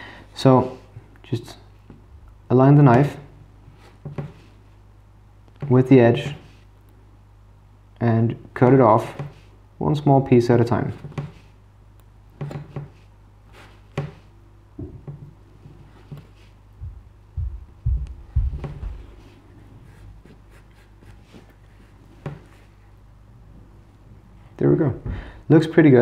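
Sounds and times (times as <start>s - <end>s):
dull thumps: 14.8s - 15.4s, 16.0s - 19.2s.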